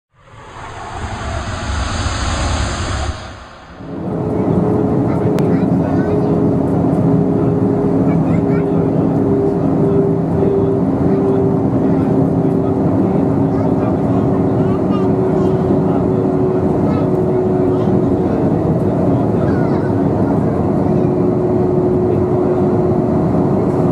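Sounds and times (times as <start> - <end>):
steady hum tones: 0.1 - 5.2
jet cabin engine drone: 0.1 - 23.9
brief hissy noise: 0.2 - 4.4.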